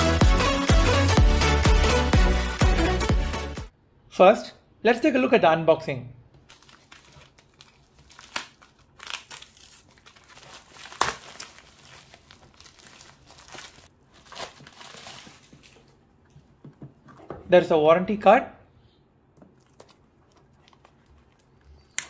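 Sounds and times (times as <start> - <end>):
plastic packaging crinkling: 6.4 - 16.1.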